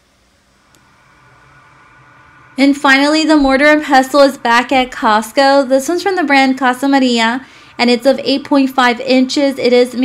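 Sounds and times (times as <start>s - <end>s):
store ambience hiss and hum: 0.0s - 10.0s.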